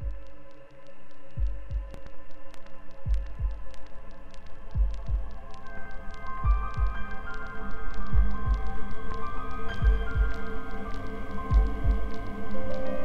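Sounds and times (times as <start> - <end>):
faint ticking clicks: 0.0 - 13.0.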